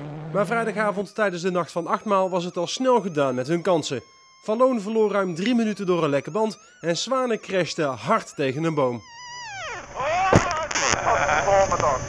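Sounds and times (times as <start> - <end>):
rally car engine: 0.0 - 1.0.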